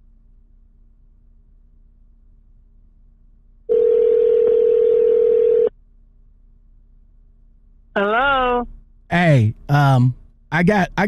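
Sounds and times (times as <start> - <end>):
telephone ringback tone: 3.7 - 5.7.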